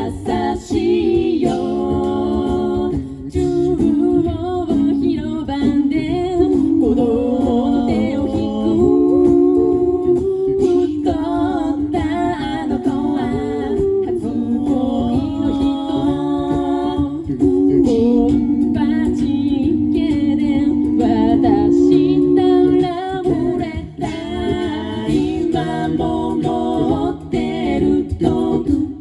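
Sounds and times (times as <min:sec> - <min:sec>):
a cappella group singing: 0:00.0 - 0:29.0.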